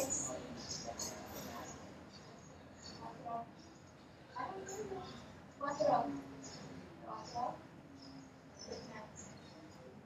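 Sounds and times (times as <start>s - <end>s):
distant voices over loudspeakers: 0.0s - 10.0s.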